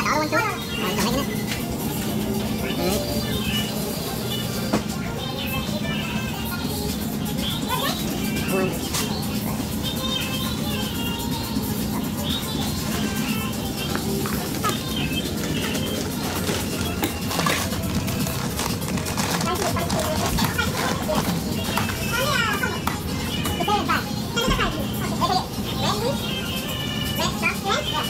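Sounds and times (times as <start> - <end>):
background music: 0.0 - 28.0
people talking indistinctly: 0.0 - 28.0.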